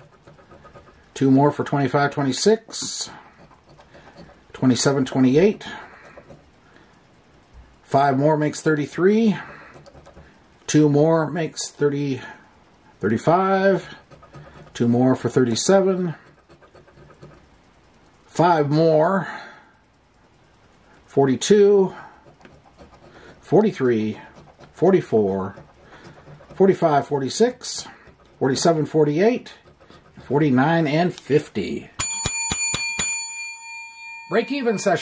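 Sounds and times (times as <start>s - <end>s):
coin scraping lottery ticket: 0.0s - 6.5s, 13.3s - 17.5s, 22.3s - 31.0s
small bell ringing: 32.0s - 35.0s.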